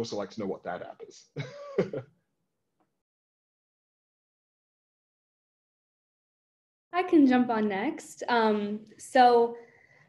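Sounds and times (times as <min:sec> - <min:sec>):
person speaking: 0:00.0 - 0:02.0
person clearing throat: 0:01.4 - 0:02.0.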